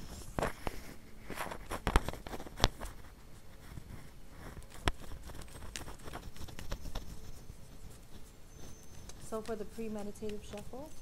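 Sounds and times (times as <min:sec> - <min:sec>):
cards being shuffled: 0:00.0 - 0:10.9.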